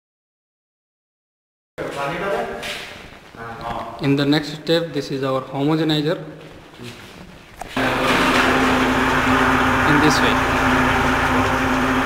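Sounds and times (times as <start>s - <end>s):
electric motor whirring: 7.8s - 12.0s.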